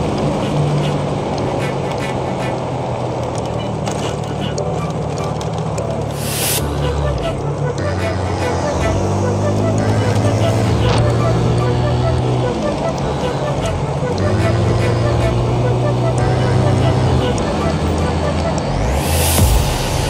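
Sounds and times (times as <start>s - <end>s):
scooter engine running: 0.0s - 20.0s.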